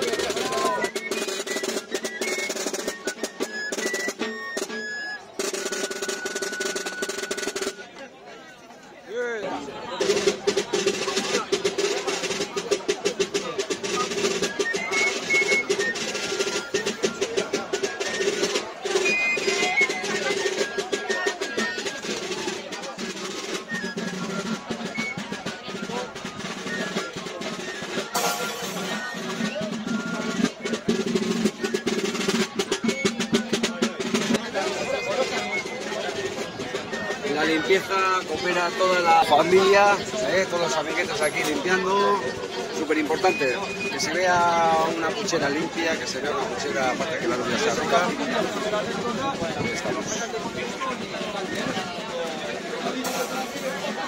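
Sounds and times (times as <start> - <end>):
pipes playing a melody: 0.0 - 7.9, 13.0 - 45.3
drums struck with sticks: 10.0 - 37.2, 45.2 - 54.0.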